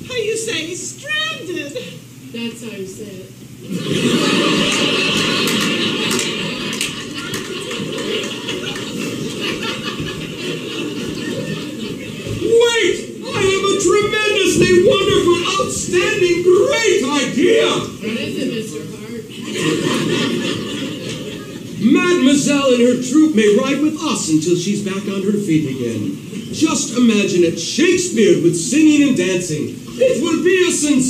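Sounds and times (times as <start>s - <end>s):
audience laughing: 3.6s - 17.7s, 19.3s - 22.6s, 25.7s - 27.0s
audience clapping: 4.0s - 12.7s.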